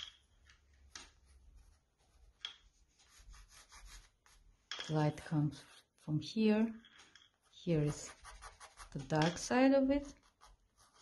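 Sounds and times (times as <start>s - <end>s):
pencil scratching on paper: 3.0s - 4.4s, 7.6s - 9.3s, 10.0s - 11.0s.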